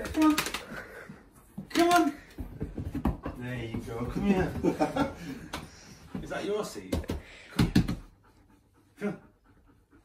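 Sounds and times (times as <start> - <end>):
dog panting softly: 7.3 - 10.0.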